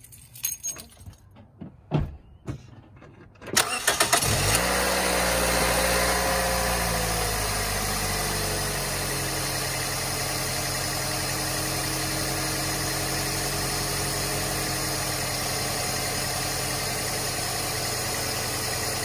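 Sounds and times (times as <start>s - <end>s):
car engine cranking and starting: 3.4s - 19.0s
car engine idling: 3.6s - 19.0s.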